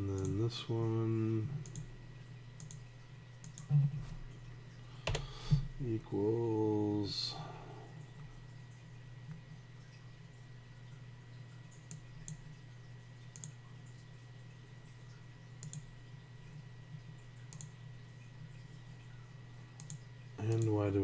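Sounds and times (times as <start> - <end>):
steady low hum: 0.0 - 21.0
computer mouse clicks: 0.2 - 0.4, 1.6 - 1.9, 2.6 - 3.7, 11.8 - 12.5, 13.3 - 13.6, 15.6 - 15.9, 17.5 - 17.8, 19.8 - 20.8.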